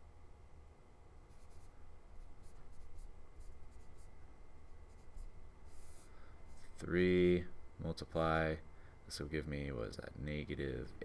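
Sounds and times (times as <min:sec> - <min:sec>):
stylus scratching on tablet: 0:01.3 - 0:06.8.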